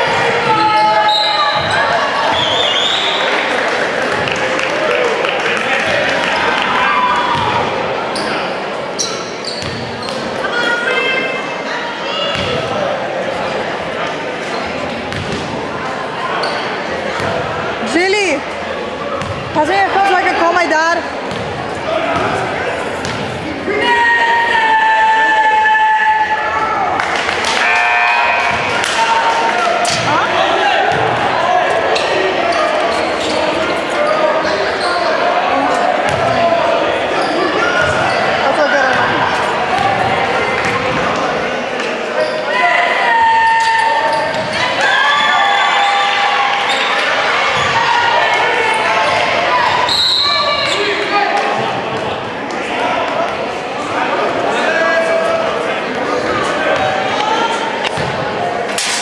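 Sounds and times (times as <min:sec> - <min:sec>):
voices and shouts echoing: 0:00.0 - 0:59.0.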